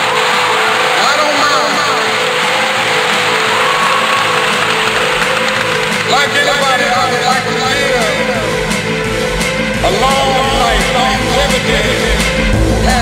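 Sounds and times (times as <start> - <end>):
fragments of voices: 0.0 - 13.0.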